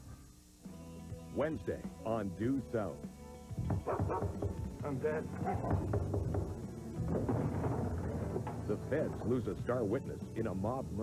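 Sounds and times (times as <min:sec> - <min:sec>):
music: 0:00.0 - 0:11.0
dog barking: 0:03.8 - 0:04.4, 0:05.4 - 0:05.9.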